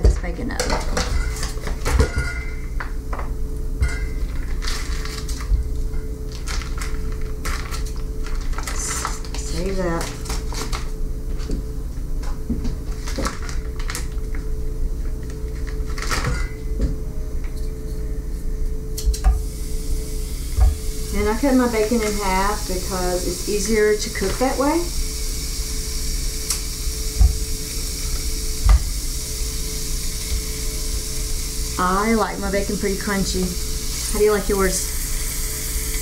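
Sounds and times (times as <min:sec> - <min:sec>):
steady low hum: 0:00.0 - 0:36.0
plastic crinkling: 0:04.2 - 0:05.6, 0:06.3 - 0:11.5, 0:12.8 - 0:14.5, 0:15.2 - 0:16.5.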